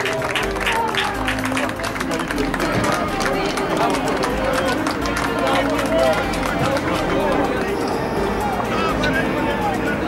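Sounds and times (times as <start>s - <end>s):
men shouting and calling: 5.6s - 10.0s.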